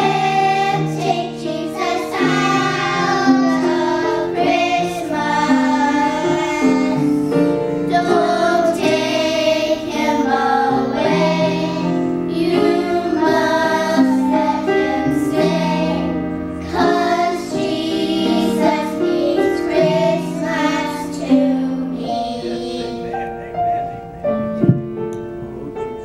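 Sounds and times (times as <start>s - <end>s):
children's choir singing: 0.0s - 23.9s.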